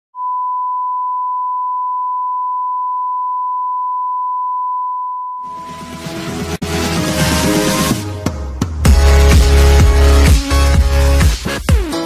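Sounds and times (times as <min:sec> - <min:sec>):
electronic music: 0:05.4 - 0:12.0.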